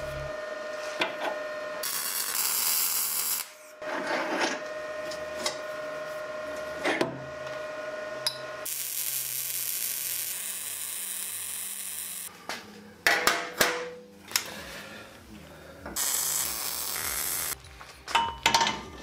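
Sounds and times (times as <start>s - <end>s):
welder arc crackling: 1.8s - 3.6s, 8.6s - 12.3s, 16.0s - 17.6s.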